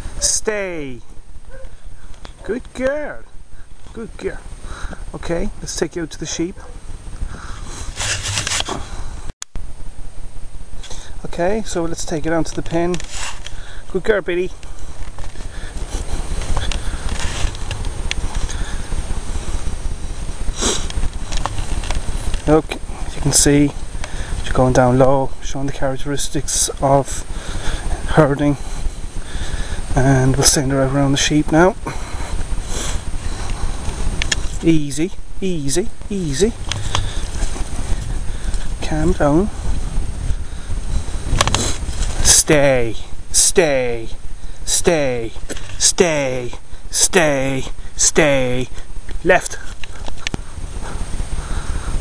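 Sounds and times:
person speaking: 0.0s - 1.2s, 2.1s - 6.8s, 10.9s - 17.4s, 29.9s - 32.2s, 34.3s - 39.8s, 41.7s - 49.9s
low rumbling wind: 0.0s - 52.0s
microphone handling noise: 6.5s - 30.8s, 31.4s - 46.9s
breathy rushes: 7.2s - 9.3s, 27.2s - 30.0s, 36.7s - 38.8s, 49.6s - 52.0s
camera handling noise: 8.0s - 8.8s, 41.3s - 41.9s
wind rumble on microphone: 36.5s - 42.2s.

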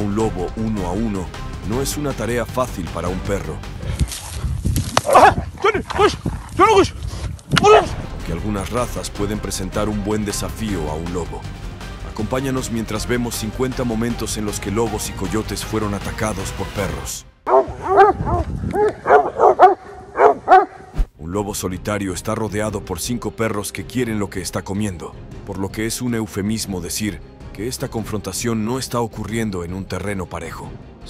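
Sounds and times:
canine yelping in distress: 5.0s - 6.2s, 17.5s - 21.0s
hounds barking excitedly: 5.0s - 6.5s, 17.5s - 21.0s.

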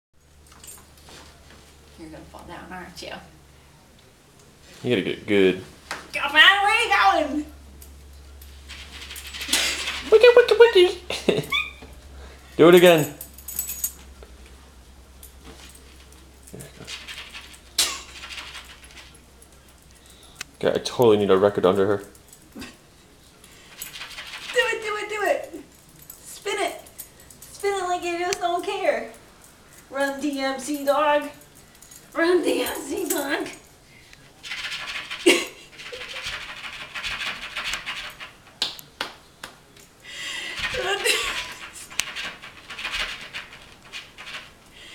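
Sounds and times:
low room hum: 0.2s - 44.9s.

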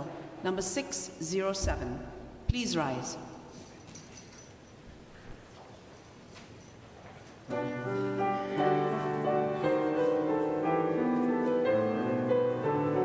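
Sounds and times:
keyboard playing sustained chords: 7.5s - 13.0s.

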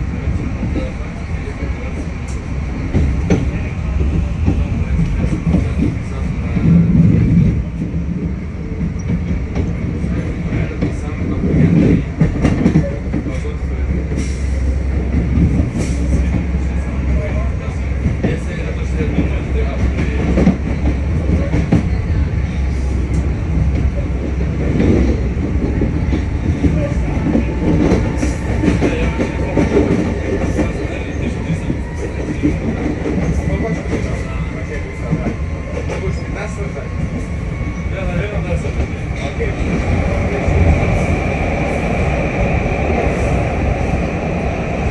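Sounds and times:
train rumbling along track: 0.0s - 44.9s.

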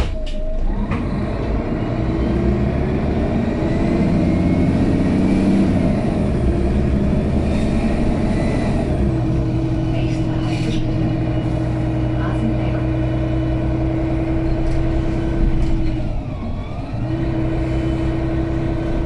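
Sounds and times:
bus diesel engine accelerating: 0.0s - 19.0s.

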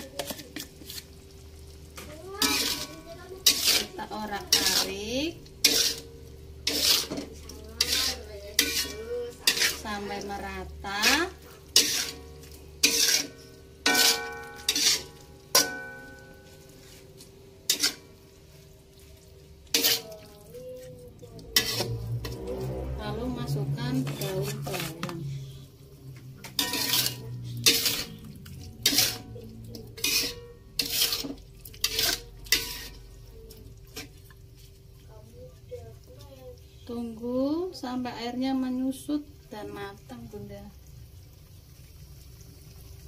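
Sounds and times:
metal spatula scraping a wok: 0.0s - 1.8s, 2.4s - 18.2s, 19.7s - 20.2s, 21.4s - 25.6s, 26.4s - 34.2s.

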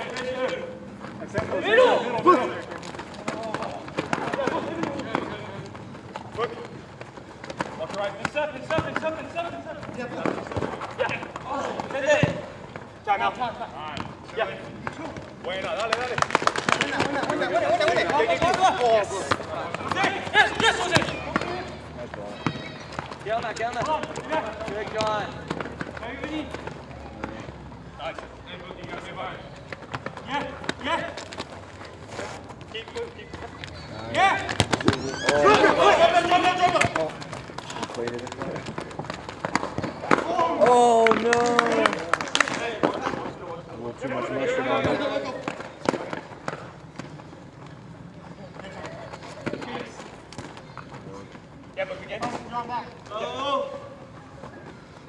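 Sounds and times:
players shouting: 0.0s - 5.7s, 7.7s - 27.5s, 32.7s - 38.5s, 39.6s - 46.2s
ball being kicked: 6.1s - 12.9s, 32.6s - 41.2s.

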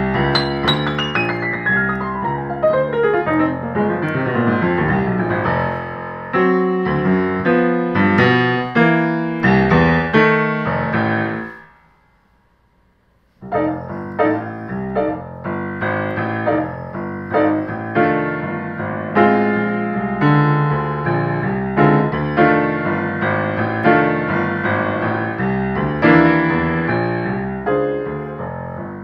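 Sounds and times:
grand piano playing blues: 0.0s - 11.7s, 13.4s - 29.0s.

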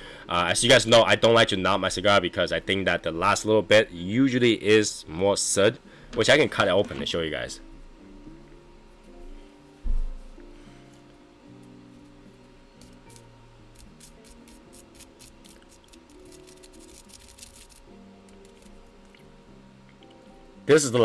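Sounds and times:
soft background music: 0.0s - 21.0s
thump: 9.9s - 10.2s
scissors snipping cigar: 12.8s - 19.3s.

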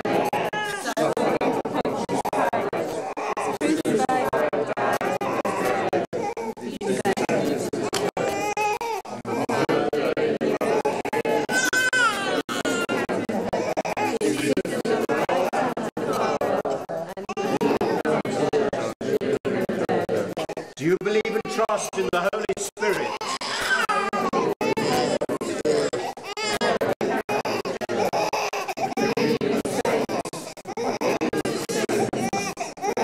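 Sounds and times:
congregation speaking together: 0.0s - 33.0s
indistinct chatter of voices: 0.0s - 33.0s.

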